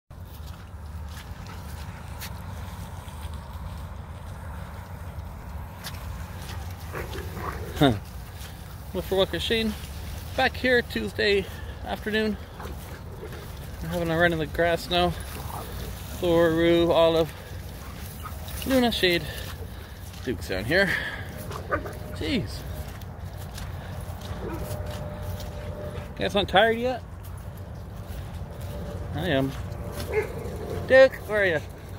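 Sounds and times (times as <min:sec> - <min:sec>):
dog barking: 0:30.1 - 0:30.8.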